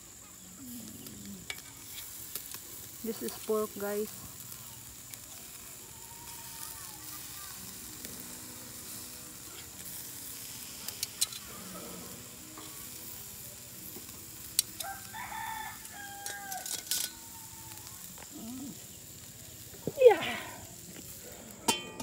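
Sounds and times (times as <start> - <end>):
meat sizzling over coals: 0.0 - 22.0
rooster crowing: 14.8 - 18.0.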